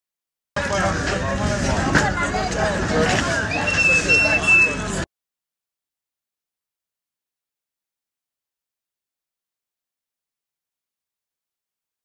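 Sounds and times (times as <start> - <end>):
indistinct voices: 0.6 - 5.1.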